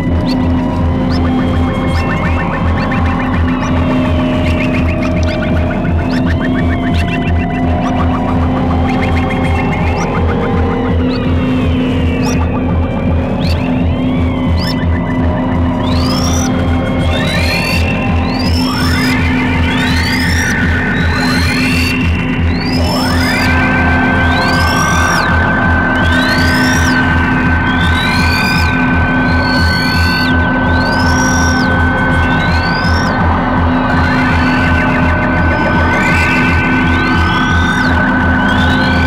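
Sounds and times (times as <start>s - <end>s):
electronic music: 0.0s - 39.0s
pulsing low drone: 0.0s - 39.0s
synthesizer sweeps: 0.0s - 39.0s.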